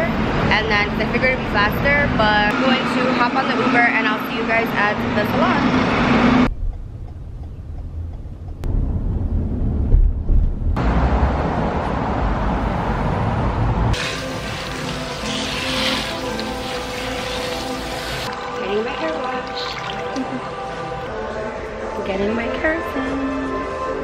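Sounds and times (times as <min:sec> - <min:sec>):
water spraying from nozzle: 0:14.0 - 0:18.3
background music: 0:14.0 - 0:24.0.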